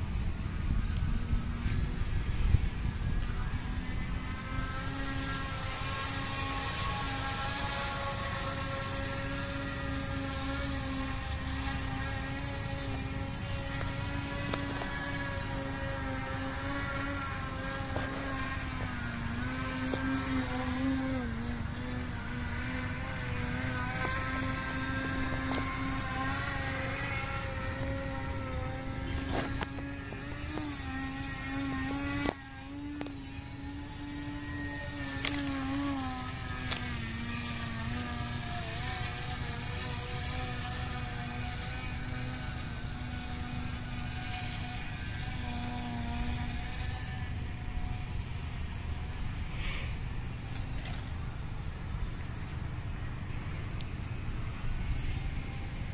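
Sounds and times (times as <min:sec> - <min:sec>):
model airplane motor droning: 0:00.0 - 0:55.9.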